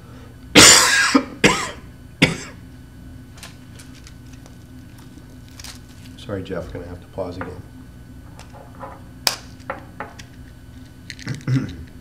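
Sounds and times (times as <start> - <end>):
man coughing: 0.6 - 2.6, 11.4 - 11.8.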